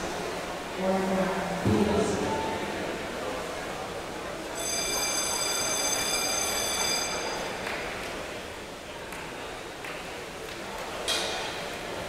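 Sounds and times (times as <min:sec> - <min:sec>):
high-pitched underwater buzzer: 0:04.6 - 0:07.3.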